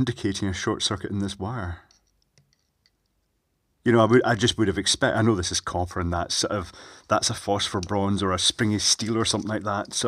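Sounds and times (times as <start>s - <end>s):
man speaking: 0.0s - 2.0s, 3.8s - 10.0s
faint small clicks: 1.8s - 3.4s.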